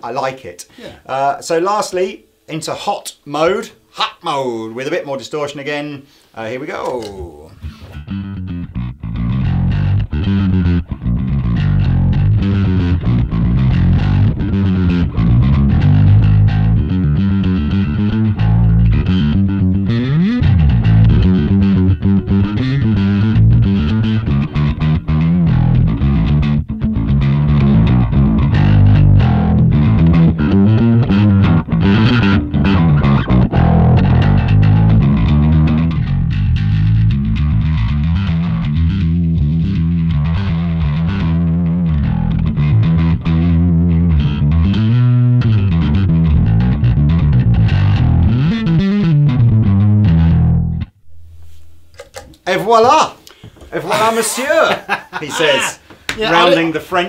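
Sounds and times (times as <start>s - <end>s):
distorted electric bass riff: 7.1s - 52.4s.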